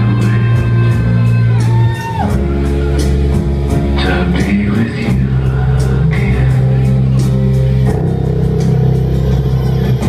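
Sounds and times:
loud music with heavy bass: 0.0s - 10.0s.

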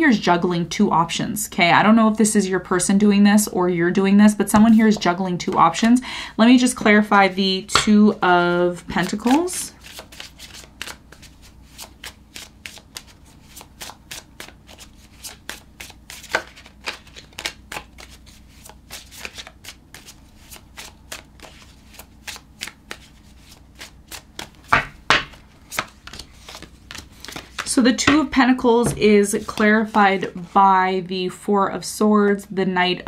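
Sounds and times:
cards being shuffled by hand: 8.7s - 30.6s.

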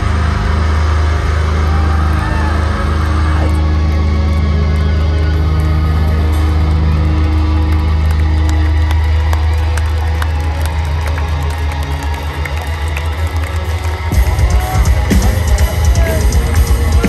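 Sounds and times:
crowd cheering and whooping: 0.0s - 17.0s
metal band playing live: 0.0s - 17.0s.

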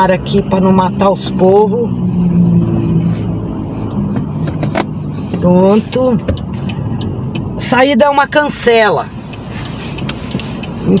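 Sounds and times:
car cabin engine hum: 0.0s - 11.0s.

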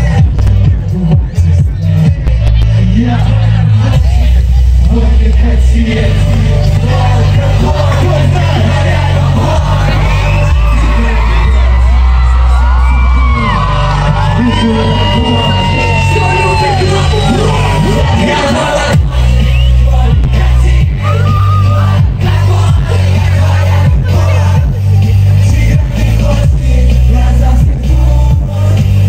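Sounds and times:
pop concert music over loud pa: 0.0s - 29.0s
pounding beat: 0.0s - 29.0s
audience whooping and yelling: 7.8s - 24.6s.

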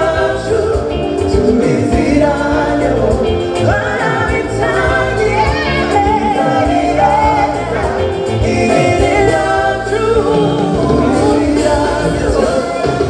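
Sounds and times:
backing singers: 0.0s - 13.0s
live band music: 0.0s - 13.0s
woman singing lead: 0.0s - 13.0s.

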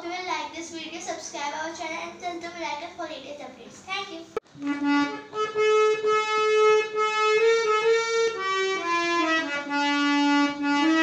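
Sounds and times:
harmonium melody: 4.6s - 11.0s.

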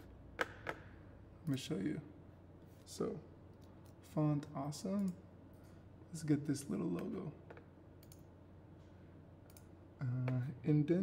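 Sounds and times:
computer mouse clicks: 7.0s - 8.3s, 9.5s - 10.4s.

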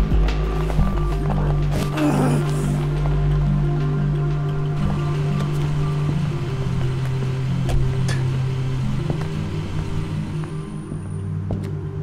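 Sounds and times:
synth film score: 0.0s - 12.0s
car engine idling: 2.6s - 11.5s.

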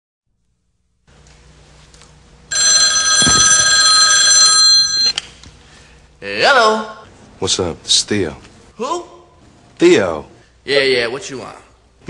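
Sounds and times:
telephone ringing: 2.5s - 5.2s.

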